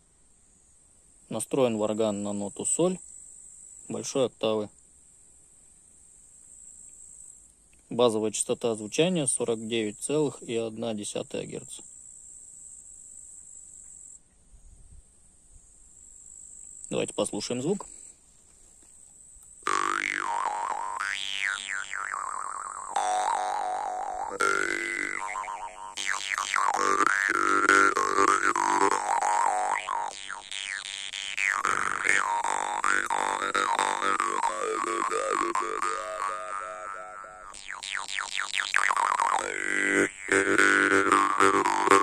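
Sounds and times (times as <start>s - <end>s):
jaw harp drone and overtones: 19.7s - 42.0s.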